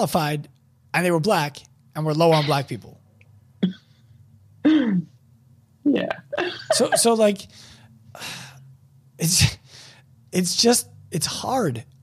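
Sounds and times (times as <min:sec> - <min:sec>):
person saying yeah: 0:02.3 - 0:02.8, 0:05.9 - 0:07.4.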